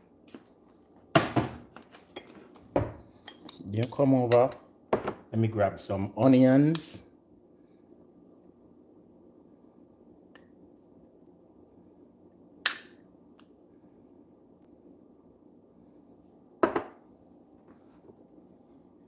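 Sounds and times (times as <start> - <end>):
low background hum: 0.0 - 19.0.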